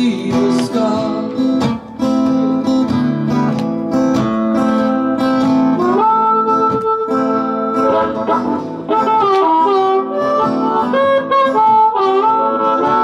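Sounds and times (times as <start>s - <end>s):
acoustic guitar strummed: 0.0s - 13.0s
harmonica holding notes: 4.2s - 13.0s.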